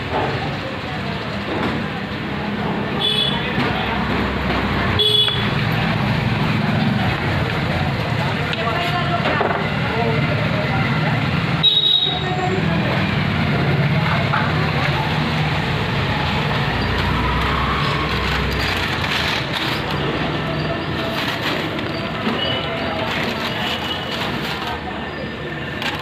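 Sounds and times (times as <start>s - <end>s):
indistinct voices: 0.0s - 26.0s
traffic: 0.0s - 26.0s.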